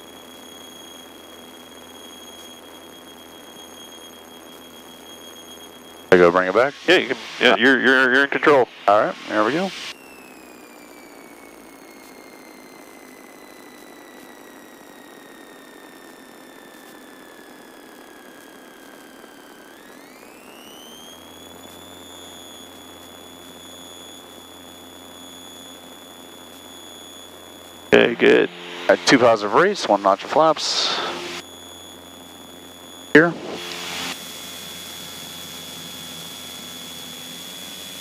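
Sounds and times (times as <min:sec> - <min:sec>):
aircraft engine whine: 0:00.0 - 0:38.0.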